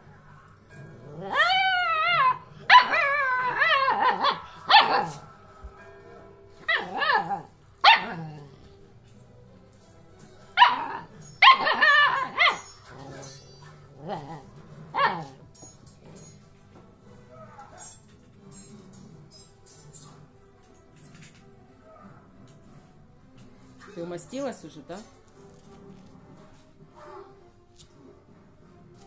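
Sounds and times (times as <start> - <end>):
puppy woo-woo calls and yips: 10.6 - 12.9.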